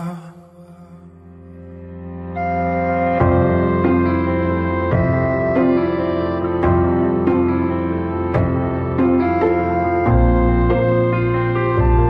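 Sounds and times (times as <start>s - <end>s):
slow pop ballad: 0.0s - 12.0s
quiet held instrumental notes: 2.3s - 12.0s.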